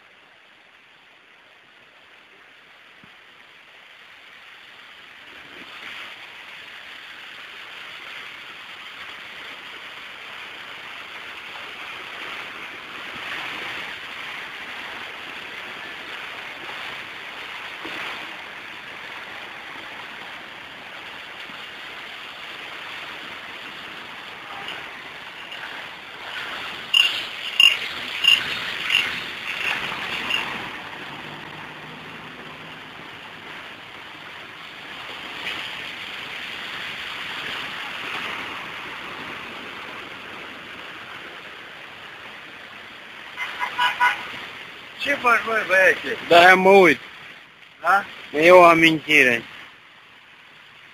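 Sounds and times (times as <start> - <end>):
floodwater rushing: 0.0 - 50.9.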